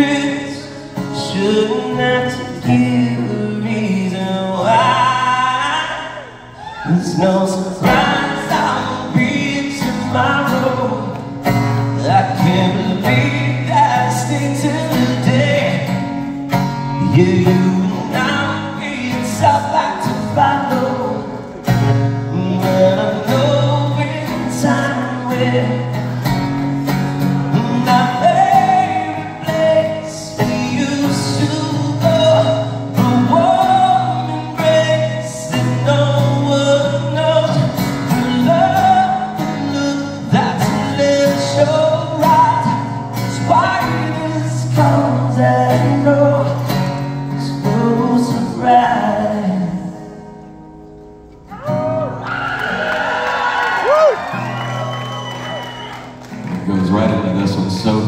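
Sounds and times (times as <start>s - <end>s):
strummed acoustic guitar: 0.0s - 6.1s, 7.2s - 53.4s
man singing slow melody: 0.0s - 50.4s.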